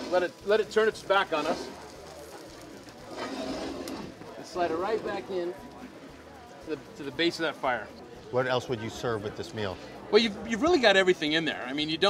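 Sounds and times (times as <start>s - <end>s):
metal skillet scraping: 0.0s - 5.3s.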